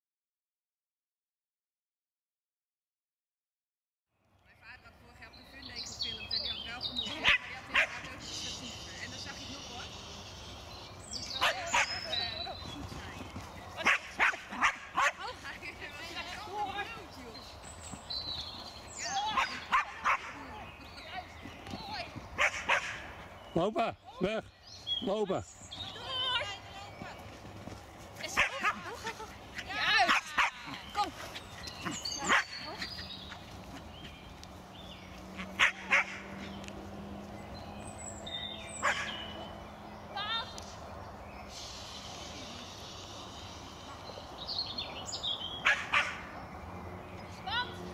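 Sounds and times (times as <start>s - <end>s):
dog barking: 7.2s - 8.0s, 11.4s - 12.0s, 13.8s - 15.2s, 19.3s - 20.4s, 22.4s - 23.1s, 32.2s - 32.8s, 35.6s - 36.4s, 38.8s - 39.2s, 45.6s - 46.3s
small dog yapping: 35.4s - 36.3s, 38.8s - 39.2s.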